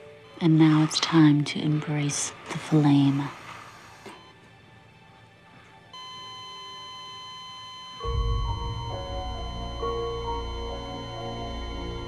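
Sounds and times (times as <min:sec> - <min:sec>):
heart monitor flatline tone: 0:00.0 - 0:03.2, 0:05.9 - 0:12.0
music with deep low notes: 0:08.0 - 0:12.0.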